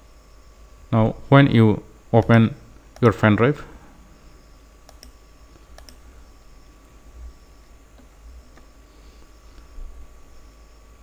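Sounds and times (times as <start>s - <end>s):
low room hum: 0.0s - 11.0s
computer mouse clicking: 4.9s - 6.0s, 7.9s - 8.7s.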